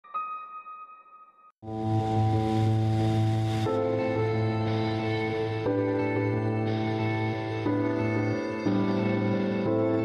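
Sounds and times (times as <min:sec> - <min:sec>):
synthesizer chord with deep bass: 0:01.6 - 0:10.0.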